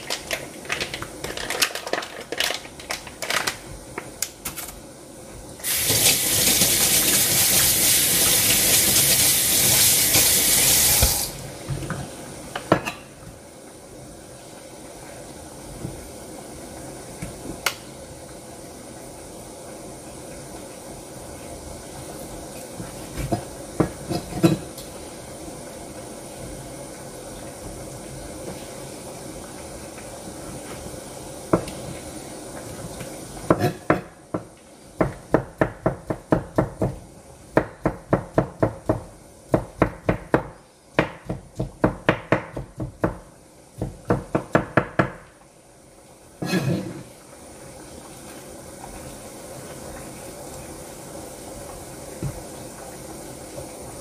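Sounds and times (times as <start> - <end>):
knocks and clatter of kitchen work: 0.0 - 4.8, 5.6 - 13.4, 22.4 - 24.9, 30.5 - 45.4, 52.1 - 52.9
kitchen tap running: 5.5 - 12.9.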